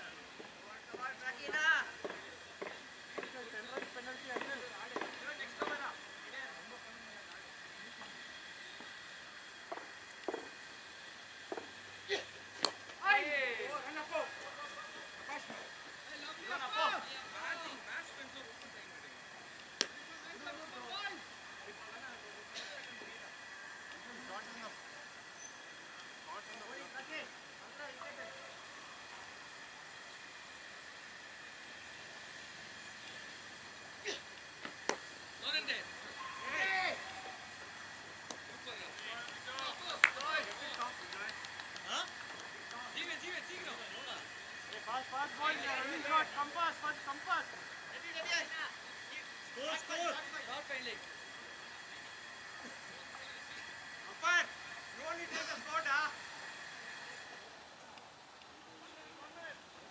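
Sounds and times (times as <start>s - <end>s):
distant shouts of fielders: 35.9s - 38.0s
sharp clicks: 38.2s - 42.9s.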